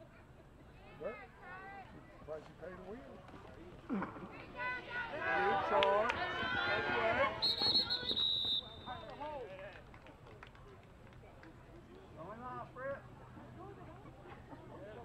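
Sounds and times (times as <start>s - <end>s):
spectators shouting and cheering: 4.4s - 8.2s
referee's whistle blast: 7.4s - 9.1s.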